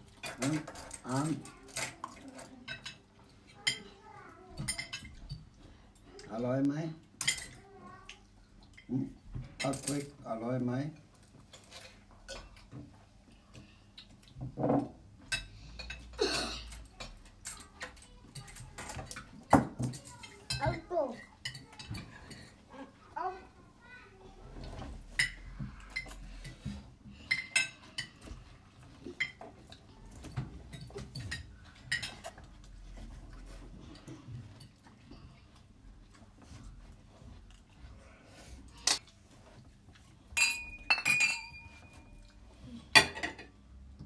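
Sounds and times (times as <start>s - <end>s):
cutlery clinking on plates: 0.1s - 5.5s, 7.2s - 7.6s, 11.0s - 13.0s, 14.3s - 22.6s, 24.7s - 34.9s, 40.3s - 43.6s
glasses clinking in a toast: 40.4s - 42.0s.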